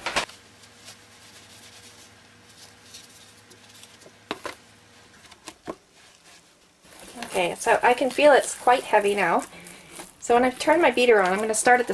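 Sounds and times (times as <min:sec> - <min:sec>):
rustling of dry paper insulation: 0:05.9 - 0:11.9.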